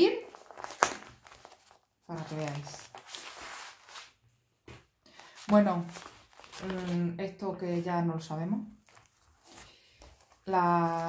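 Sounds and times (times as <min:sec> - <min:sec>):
plastic bag crinkling: 0:00.0 - 0:04.1, 0:05.2 - 0:07.2, 0:08.7 - 0:11.0.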